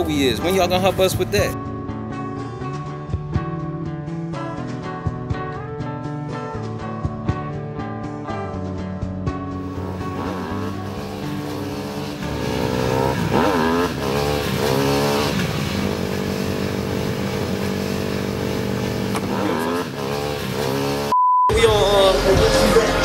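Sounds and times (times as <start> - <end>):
background music: 0.0 - 23.0
motorcycle engines revving: 9.6 - 21.1.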